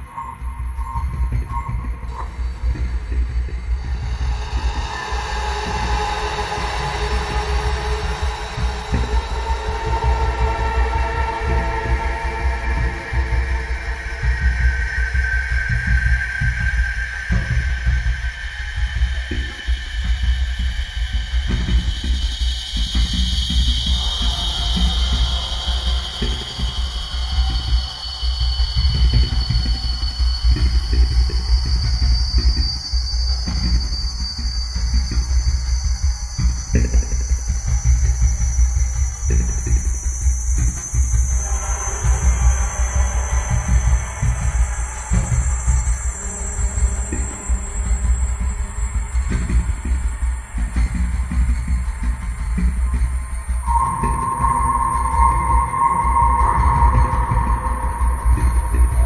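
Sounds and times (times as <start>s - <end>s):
thin high rising tones: 53.6s - 59.0s.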